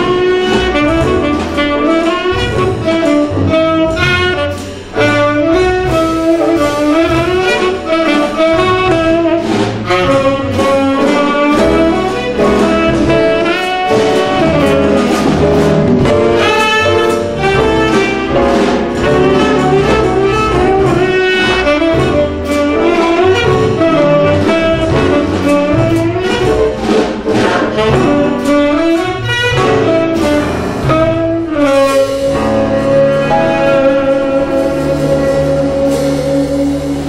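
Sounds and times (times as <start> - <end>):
drums: 0.0 - 37.0
piano: 0.0 - 37.0
saxophone fast run: 0.0 - 37.0
upright bass: 0.0 - 37.0.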